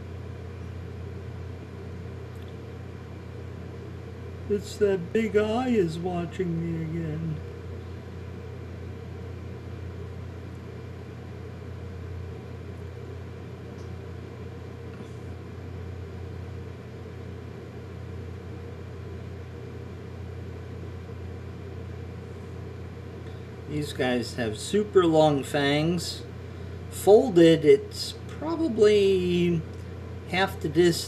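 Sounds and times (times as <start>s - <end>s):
low room hum: 0.0s - 31.0s.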